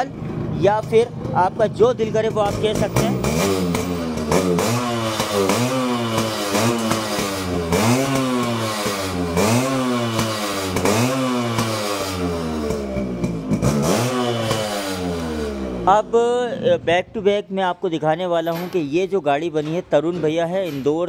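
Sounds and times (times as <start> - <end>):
two-stroke engine revving: 0.0 - 17.0.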